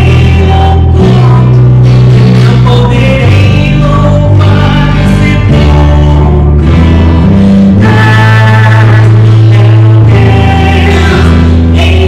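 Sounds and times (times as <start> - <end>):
person singing: 0.0 - 12.0
steady bass: 0.0 - 12.0
worship song with guitar: 0.0 - 12.0.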